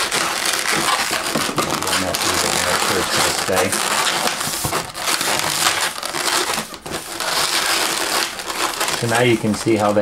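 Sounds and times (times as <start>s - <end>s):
balloons rubbing and squeezing: 0.0s - 10.0s.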